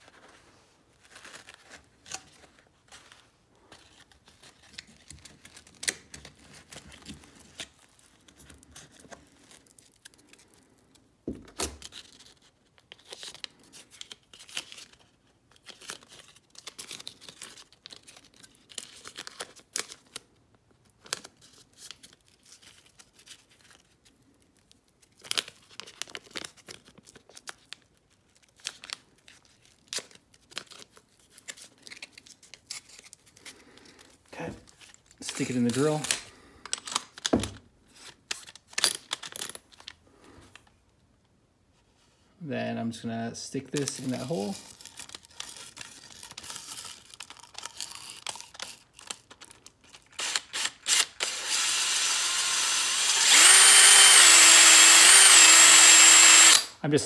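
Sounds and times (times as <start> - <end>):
tape pulled off roll and torn: 1.0 - 40.7, 43.8 - 52.1.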